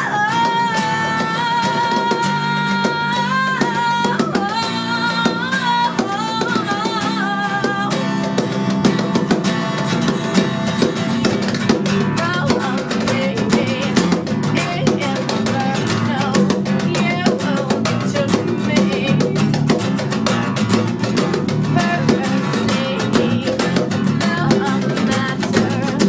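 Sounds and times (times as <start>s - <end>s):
woman singing: 0.0s - 9.5s, 10.3s - 26.0s
bass guitar: 0.0s - 26.0s
strummed acoustic guitar: 0.0s - 26.0s.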